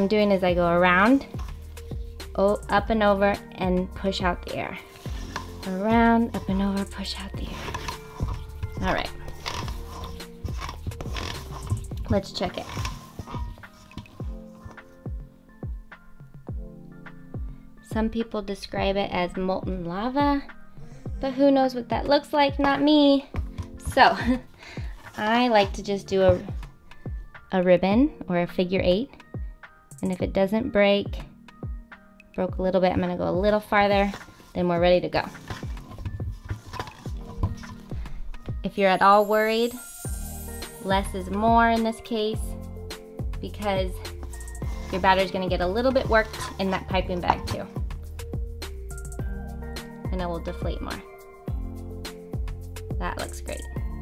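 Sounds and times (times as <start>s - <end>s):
background music: 0.0s - 54.0s
knocks and scrapes: 4.6s - 15.0s, 33.8s - 38.0s, 43.6s - 47.8s
spatula folding batter in bowl: 4.8s - 15.0s.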